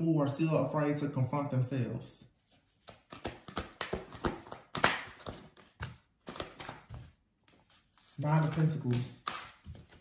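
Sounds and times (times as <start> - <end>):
cards being shuffled: 2.5 - 10.0.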